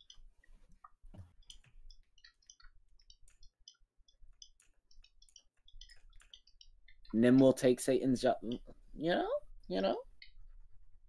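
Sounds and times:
faint computer mouse clicking: 1.1 - 7.6.

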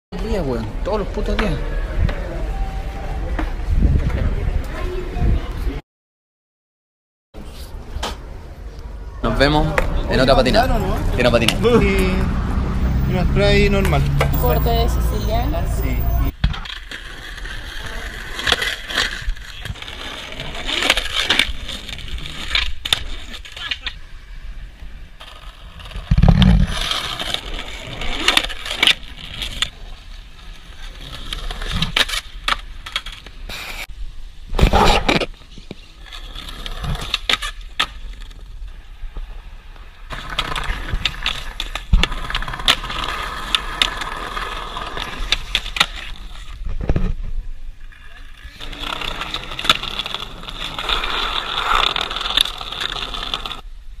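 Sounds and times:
skateboard wheels rolling: 0.2 - 5.8, 7.4 - 54.0
voices: 0.2 - 5.8, 8.7 - 16.3
skateboard clacks: 40.1 - 47.0, 48.6 - 53.6.

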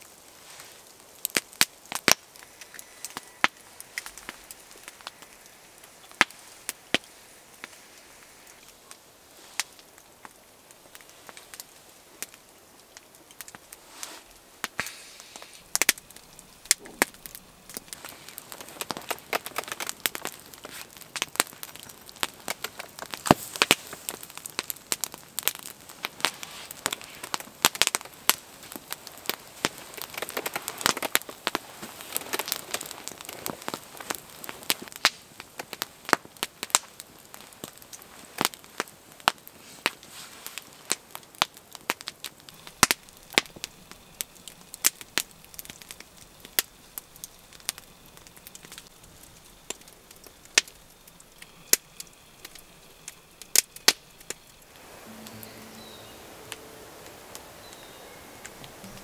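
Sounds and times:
embers hissing: 0.0 - 59.0
log fire crackling and popping: 0.0 - 59.0.

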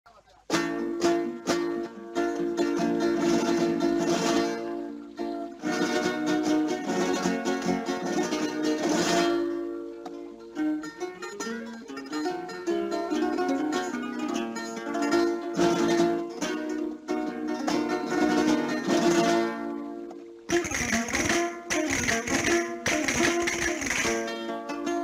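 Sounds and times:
guitars strumming chords: 0.5 - 25.0.

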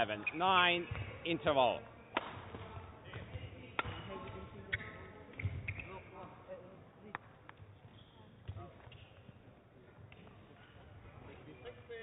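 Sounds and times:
faint background chatter: 0.0 - 12.0.

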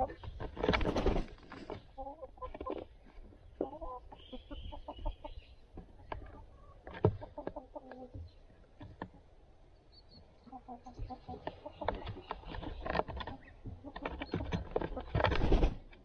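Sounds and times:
hens clucking: 0.0 - 15.9.

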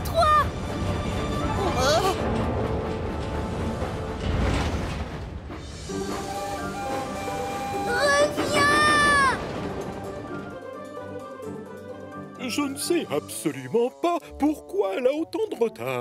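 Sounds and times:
steam locomotive rumbling: 0.5 - 12.0
high whistle: 5.9 - 8.2
cartoon music: 6.5 - 9.5.

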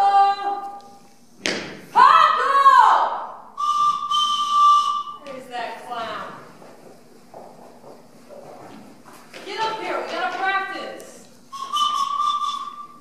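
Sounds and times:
whistle-like gliding calls: 3.6 - 5.2, 11.5 - 13.0.

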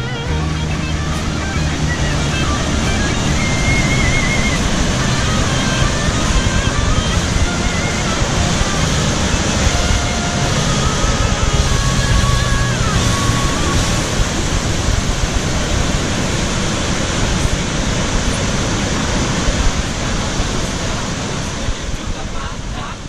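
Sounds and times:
faint song: 0.0 - 23.0
waterfall roaring: 0.0 - 23.0.

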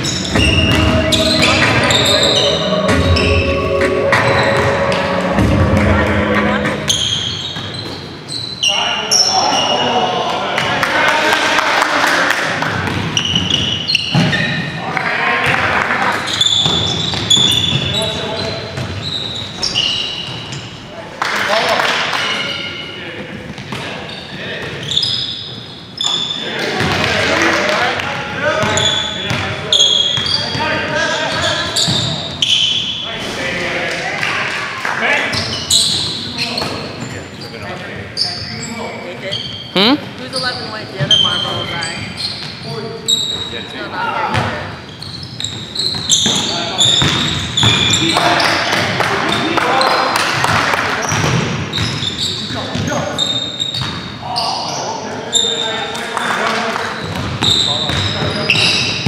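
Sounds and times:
basketball bouncing: 0.0 - 2.0, 47.0 - 47.8
sneaker squeaks: 0.0 - 5.4, 6.0 - 10.0, 12.8 - 14.8, 16.0 - 20.9, 22.2 - 27.2, 28.5 - 33.3, 35.2 - 56.0, 56.8 - 59.0
indistinct players' voices: 0.1 - 7.4.

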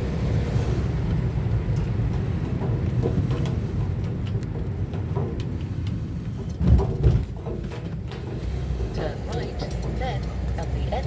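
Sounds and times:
car interior road rumble: 0.0 - 11.0.

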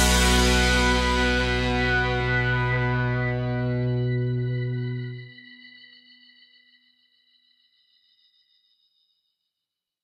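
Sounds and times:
distorted electric guitar chord: 0.0 - 5.3.

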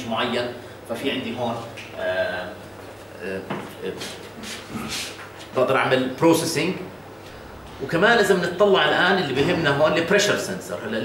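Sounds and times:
man making hesitant speech sounds: 9.3 - 10.1.

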